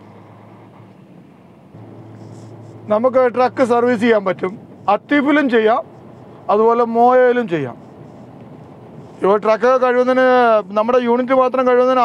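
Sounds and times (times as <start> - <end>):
low engine drone: 0.0 - 12.0
road and tyre hiss: 0.0 - 12.0.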